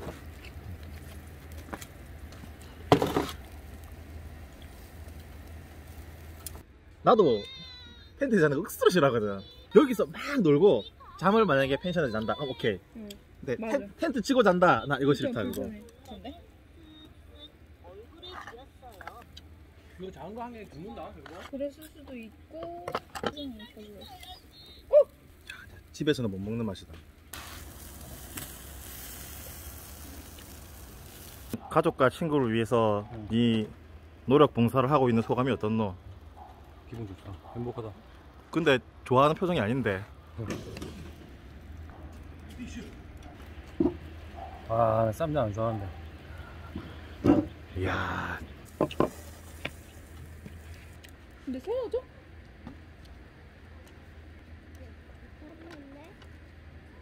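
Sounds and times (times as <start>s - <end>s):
meat sizzling on a grill: 0.0s - 6.7s, 8.6s - 19.0s, 19.8s - 22.3s, 22.9s - 36.0s, 36.6s - 43.2s, 43.8s - 45.7s, 47.7s - 51.9s
faint background hum: 0.0s - 57.0s.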